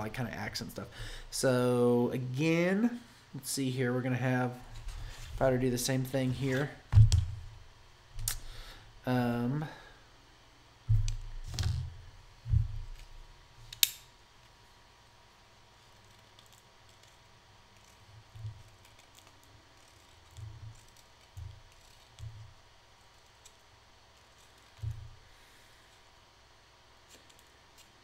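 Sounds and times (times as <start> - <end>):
handling knocks: 6.9 - 7.5
knife scraping pencil: 15.8 - 22.3.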